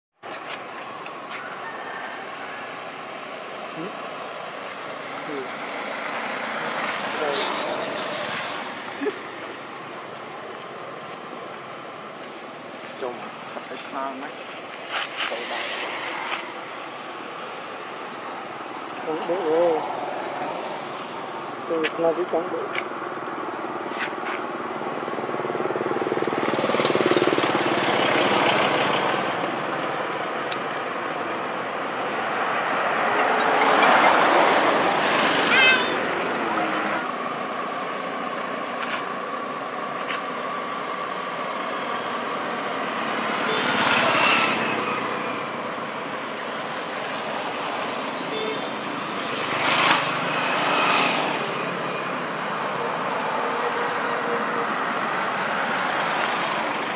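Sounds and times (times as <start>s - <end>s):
road traffic hum: 0.1s - 56.9s
vehicles passing: 0.2s - 56.9s.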